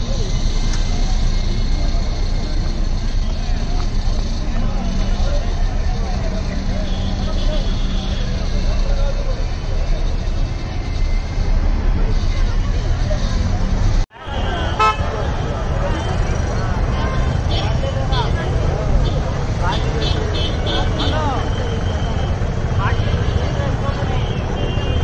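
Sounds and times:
many people talking: 0.0 - 25.0
vehicles running: 0.0 - 25.0
car horns tooting: 6.4 - 9.0, 14.2 - 25.0.

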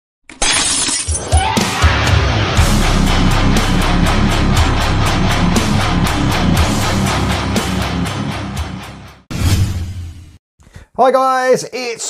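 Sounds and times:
glass shattering: 0.3 - 1.6
rock intro music: 1.2 - 10.4.

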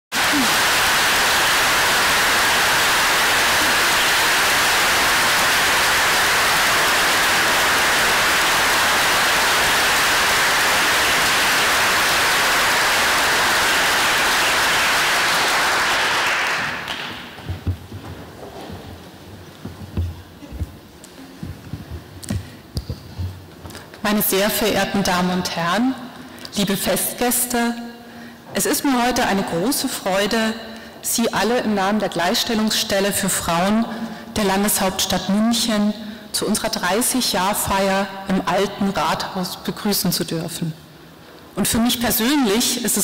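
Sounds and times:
audience applauding: 0.1 - 17.6.

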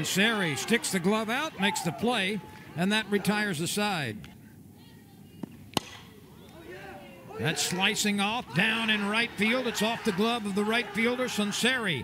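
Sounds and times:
quiet ballpark ambience: 0.0 - 12.0
bat cracking ball: 5.4 - 6.2.

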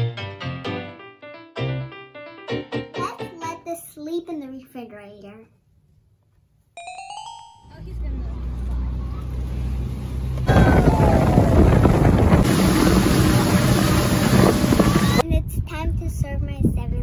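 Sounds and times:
chime sound effect: 6.8 - 7.9
boat engine hum: 7.7 - 15.2
rush of boat through water: 10.4 - 15.2
wind buffeting microphone: 10.4 - 17.0.

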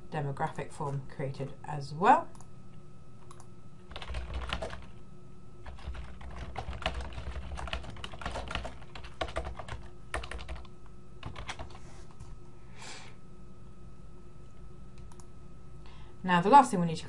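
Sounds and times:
typing on computer keyboard: 3.3 - 5.0, 5.6 - 11.8.

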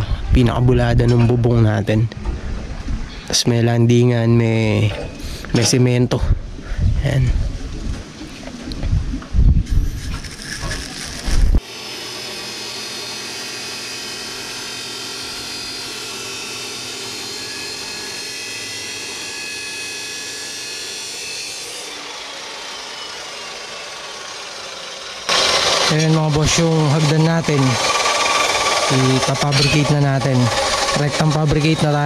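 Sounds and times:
chop saw cutting steel: 10.0 - 32.0.

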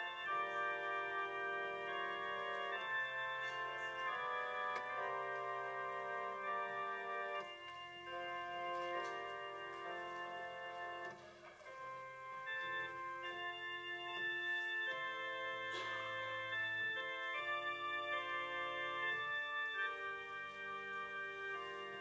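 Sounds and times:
organ playing held chords: 0.0 - 22.0.

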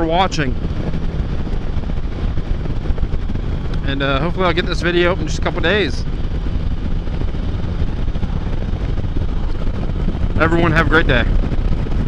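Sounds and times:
motorcycle engine and road drone: 0.0 - 12.0
wind rushing over microphone: 0.0 - 12.0.

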